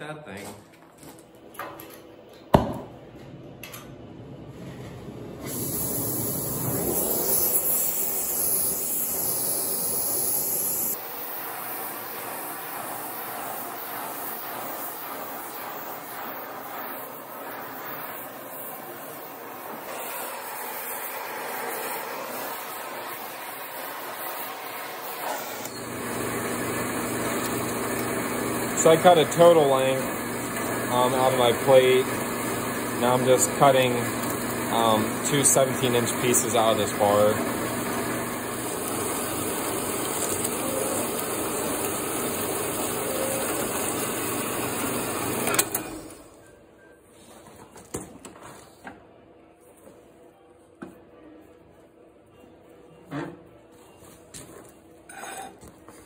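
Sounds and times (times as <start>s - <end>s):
sharp pop: 2.5s - 2.9s
cutting torch hissing: 5.4s - 46.2s.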